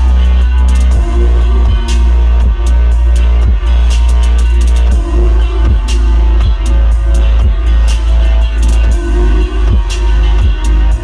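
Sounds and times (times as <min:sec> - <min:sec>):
heavy sustained bass: 0:00.0 - 0:11.0
steady drum beat: 0:00.0 - 0:11.0.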